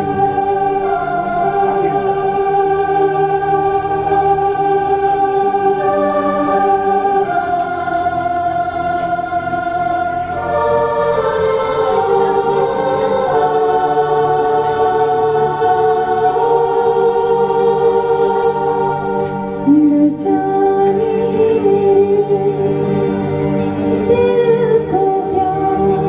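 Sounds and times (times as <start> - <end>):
instrumental music with choir-like sound: 0.0 - 26.0.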